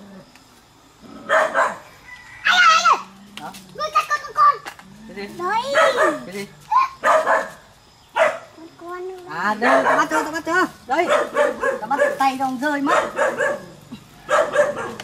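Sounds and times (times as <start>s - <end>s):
dog barking: 1.2s - 1.9s, 5.6s - 6.3s, 7.0s - 8.6s, 9.6s - 15.0s.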